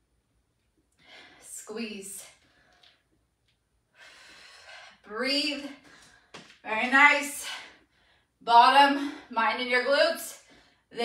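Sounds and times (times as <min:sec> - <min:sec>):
woman breathing in: 0:03.9 - 0:05.0.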